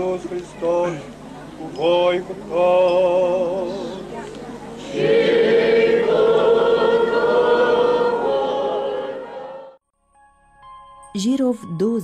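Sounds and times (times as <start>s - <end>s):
church choir singing: 4.8s - 9.8s.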